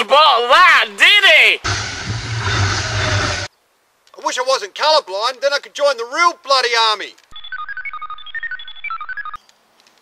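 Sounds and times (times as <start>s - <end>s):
electronic beeping: 7.3s - 9.4s.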